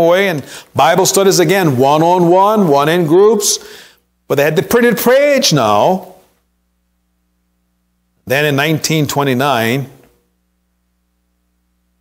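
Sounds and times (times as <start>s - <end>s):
man speaking: 0.0s - 3.7s, 4.3s - 6.2s, 8.3s - 10.0s
faint electrical hum: 0.0s - 12.0s.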